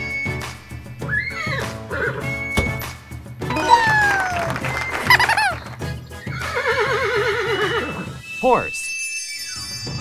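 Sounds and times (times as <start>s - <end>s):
horse whinnying: 6.2s - 8.2s.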